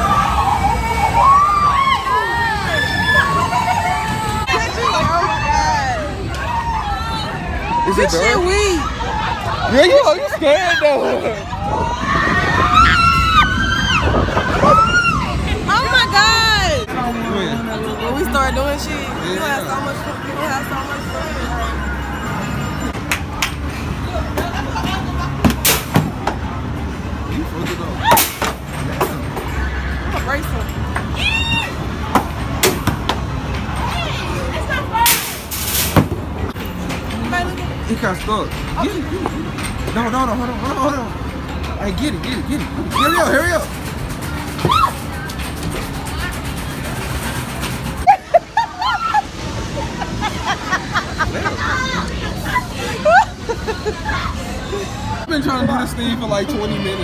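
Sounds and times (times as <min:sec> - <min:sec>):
riders screaming: 0:00.0 - 0:09.4, 0:11.5 - 0:16.3
busy arcade din with chatter: 0:00.0 - 0:57.0
people talking: 0:15.5 - 0:23.0.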